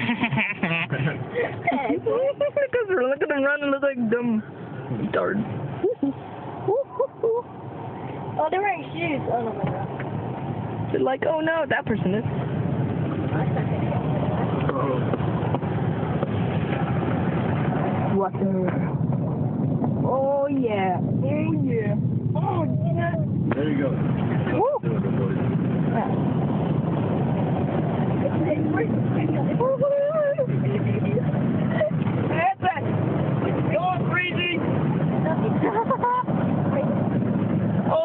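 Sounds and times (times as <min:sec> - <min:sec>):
car engine running: 0:00.0 - 0:38.0
water rushing from tyres: 0:00.0 - 0:38.0.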